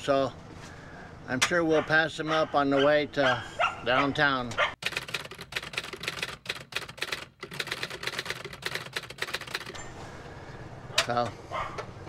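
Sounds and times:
typewriter key clicks: 4.8s - 9.8s.

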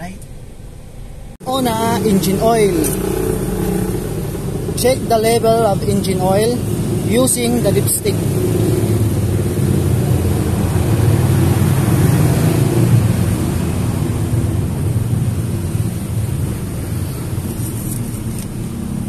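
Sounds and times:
car engine idling: 0.0s - 12.1s.

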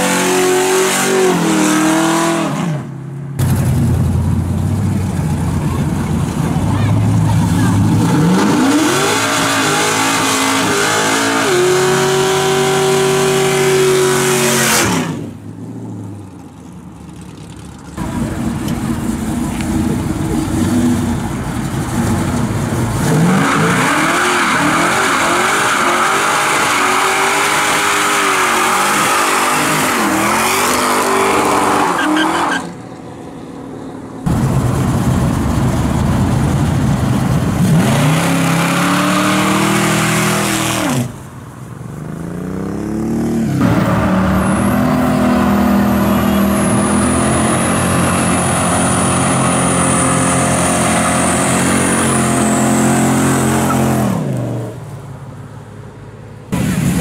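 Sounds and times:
car engines revving hard: 0.0s - 16.5s, 17.1s - 32.8s, 33.4s - 41.2s, 42.0s - 54.8s.

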